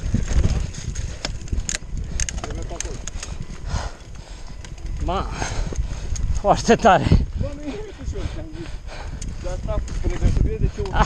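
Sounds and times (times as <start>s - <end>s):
bike chain and frame rattling: 0.0s - 11.0s
wind and tyres rumble: 0.0s - 11.0s.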